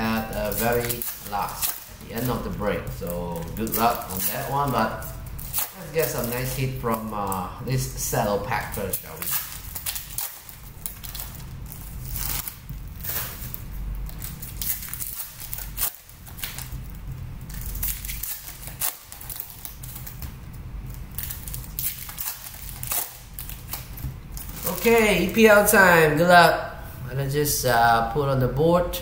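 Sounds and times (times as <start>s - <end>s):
foil wrapper crinkling: 0.0s - 25.7s
low steady hum: 0.0s - 29.0s.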